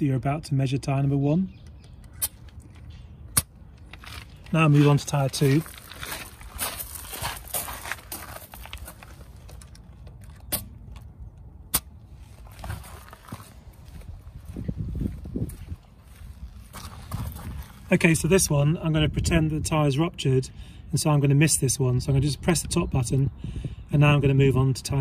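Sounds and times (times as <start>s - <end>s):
footsteps crunching on gravel: 3.8s - 11.1s, 12.2s - 18.1s.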